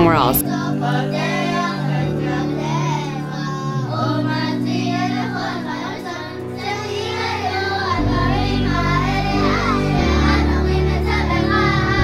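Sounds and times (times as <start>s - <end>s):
musical accompaniment: 0.0s - 12.0s
children singing: 0.4s - 12.0s.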